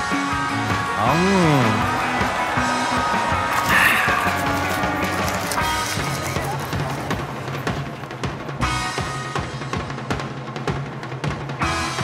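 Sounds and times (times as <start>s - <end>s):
music with held notes: 0.0s - 12.0s.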